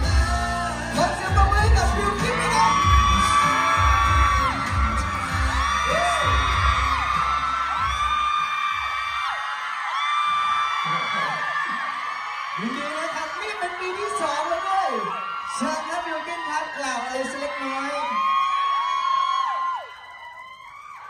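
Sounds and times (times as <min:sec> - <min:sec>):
loud music with heavy beat: 0:00.0 - 0:09.0
fans screaming: 0:00.0 - 0:21.0.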